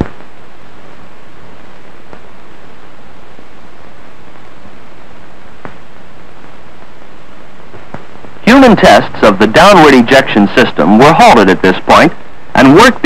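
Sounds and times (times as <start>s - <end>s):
old film soundtrack hiss: 0.0s - 13.0s.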